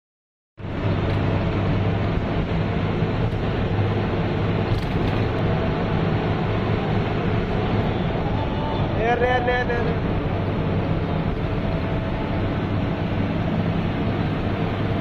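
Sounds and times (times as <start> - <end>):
bus diesel engine running: 0.6 - 15.0
road noise: 0.6 - 15.0.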